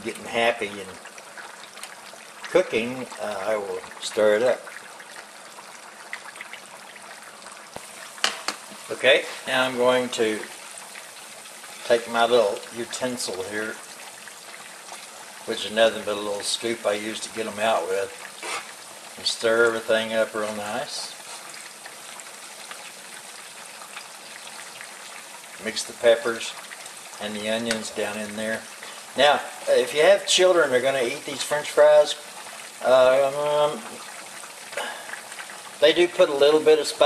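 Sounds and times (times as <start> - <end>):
deep-frying sizzle: 0.0 - 37.0.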